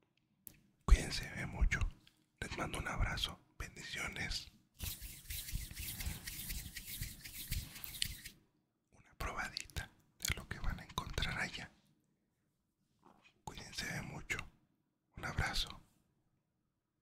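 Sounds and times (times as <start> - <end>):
man whispering into microphone: 0.9 - 4.5, 9.0 - 11.8, 13.3 - 14.6, 15.2 - 15.9.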